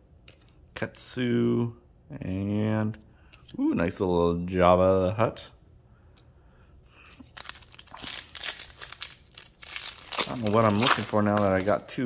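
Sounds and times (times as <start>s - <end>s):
foil wrapper crinkling: 7.0s - 12.0s.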